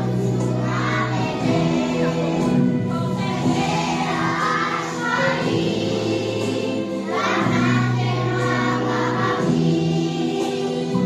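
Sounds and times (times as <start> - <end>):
children singing together: 0.0 - 11.0
recorded backing music: 0.0 - 11.0.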